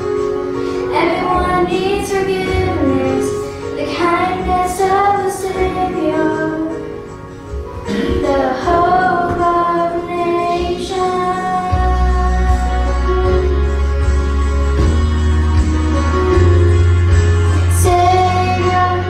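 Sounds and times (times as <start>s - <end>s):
instrumental accompaniment: 0.0s - 19.0s
girl singing into a microphone: 0.9s - 7.0s, 7.9s - 13.6s, 17.7s - 19.0s.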